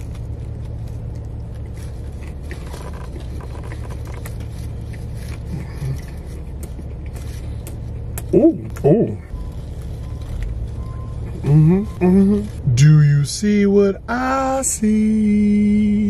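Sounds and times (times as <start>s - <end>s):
low rumble inside car: 0.0s - 16.0s.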